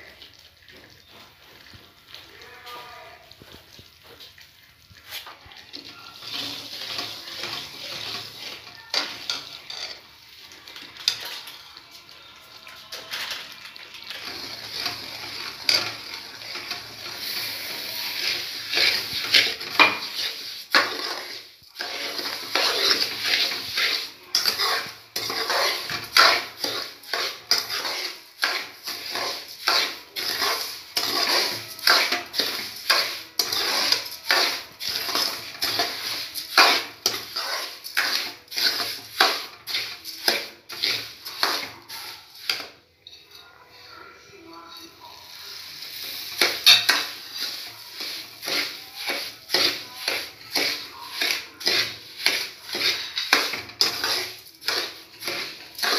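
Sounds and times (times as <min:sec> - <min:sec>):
spoon scraping a metal pan: 0:05.1 - 0:10.2, 0:12.9 - 0:55.9.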